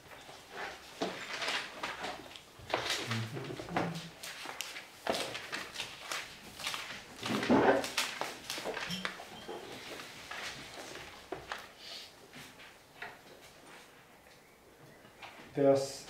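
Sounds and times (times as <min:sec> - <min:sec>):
book pages rustling: 0:00.0 - 0:14.0.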